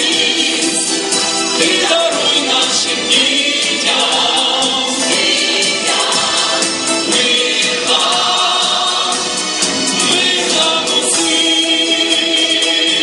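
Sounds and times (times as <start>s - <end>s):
mixed choir singing: 0.0s - 13.0s
rhythmic musical accompaniment: 0.0s - 13.0s.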